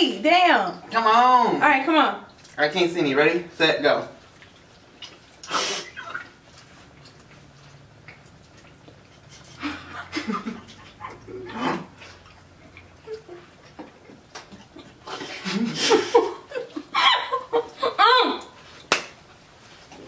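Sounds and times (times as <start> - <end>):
stifled laughs: 9.2 - 11.6, 14.7 - 18.4.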